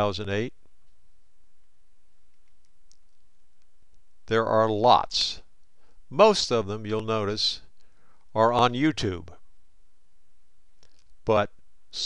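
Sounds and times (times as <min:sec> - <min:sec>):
low room noise hiss: 0:00.0 - 0:12.0.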